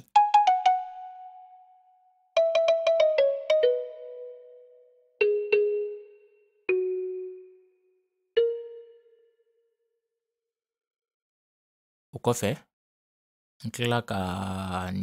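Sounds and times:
kalimba melody: 0.0s - 1.8s, 2.4s - 7.8s, 8.4s - 9.2s.

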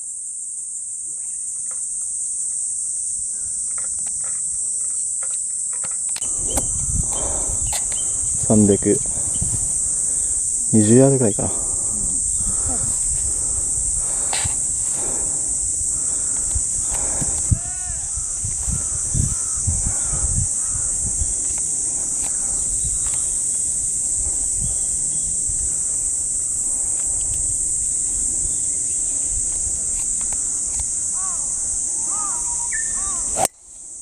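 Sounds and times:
insects droning: 0.0s - 34.0s
bird chirps: 32.1s - 33.3s.

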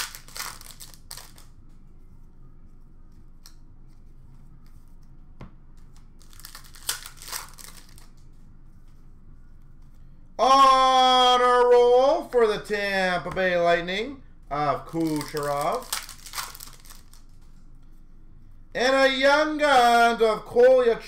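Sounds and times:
foil wrappers crinkling and tearing: 0.0s - 1.5s, 6.2s - 8.2s, 14.9s - 17.3s.

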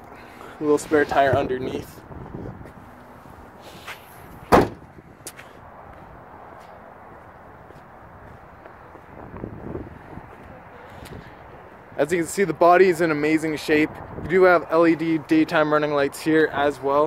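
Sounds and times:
liftgate slamming shut: 4.5s - 4.9s.

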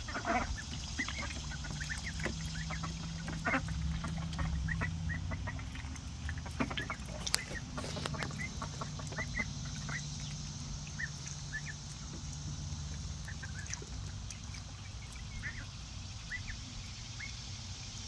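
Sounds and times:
ducks calling softly: 0.0s - 17.8s
ducks paddling in water: 0.0s - 18.0s
steady low hum: 0.0s - 18.0s.

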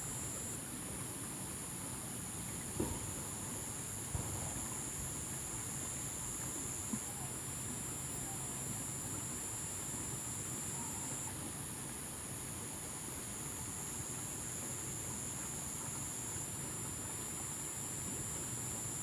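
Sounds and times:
high-pitched hiss: 0.0s - 19.0s.

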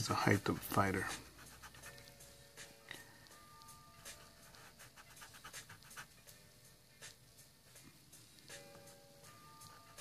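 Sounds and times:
blending stump rubbing on paper: 0.2s - 2.0s, 4.1s - 6.1s.

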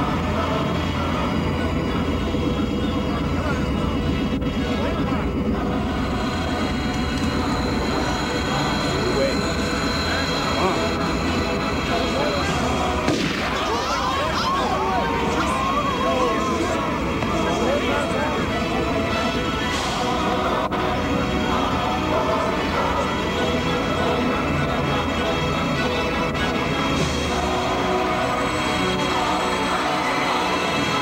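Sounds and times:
crowd murmur: 0.0s - 31.0s
steady low rumble: 0.0s - 31.0s
voices rising: 0.0s - 31.0s.

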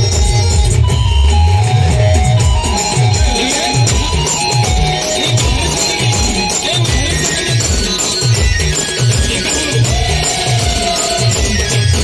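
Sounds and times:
amplified folk dance music: 0.0s - 12.0s
heavy pulsing bass: 0.0s - 12.0s.

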